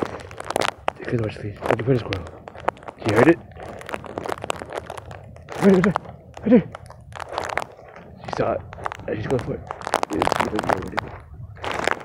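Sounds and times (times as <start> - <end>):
crunchy clicks: 0.0 - 12.0.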